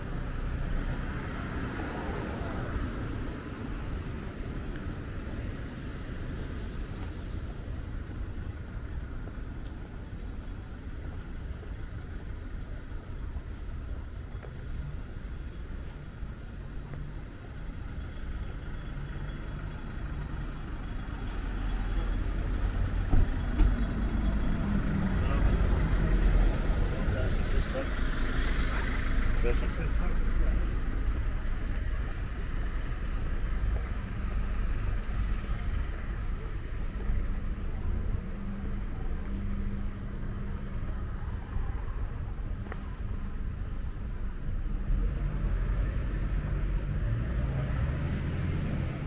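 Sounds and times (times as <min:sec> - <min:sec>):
low traffic rumble: 0:00.0 - 0:49.0
people's voices: 0:01.0 - 0:49.0
car passing: 0:43.8 - 0:49.0.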